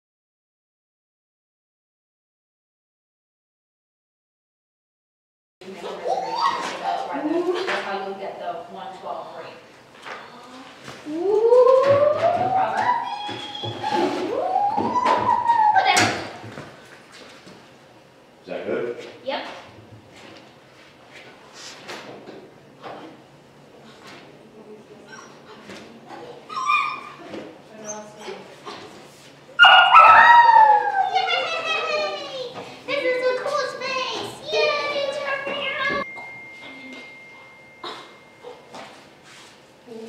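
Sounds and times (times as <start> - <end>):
puppy whining: 11.1 - 16.4, 25.0 - 29.0, 29.6 - 31.6
puppy barking: 29.6 - 31.3.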